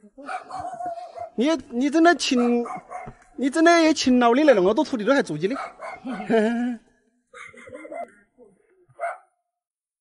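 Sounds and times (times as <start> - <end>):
dog barking: 0.2 - 1.4, 2.3 - 3.2, 5.5 - 6.3, 7.3 - 8.2, 9.0 - 9.4.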